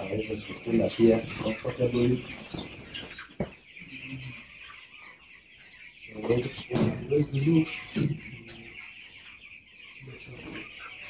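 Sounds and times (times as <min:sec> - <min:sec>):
chicks peeping and chirping: 0:00.0 - 0:11.0.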